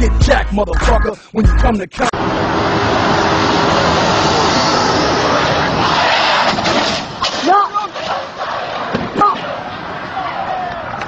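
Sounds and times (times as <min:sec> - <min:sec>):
loud steady rushing noise: 0:02.2 - 0:11.0
men shouting high cries: 0:10.0 - 0:11.0.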